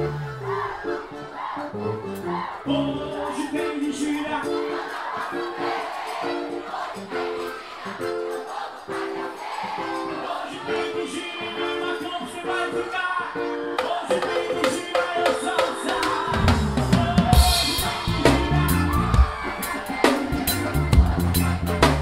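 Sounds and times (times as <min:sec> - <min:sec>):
electric bass: 0:00.0 - 0:00.8, 0:16.4 - 0:19.3, 0:20.4 - 0:22.0
live band music: 0:00.0 - 0:22.0
drums and cymbals: 0:14.1 - 0:22.0.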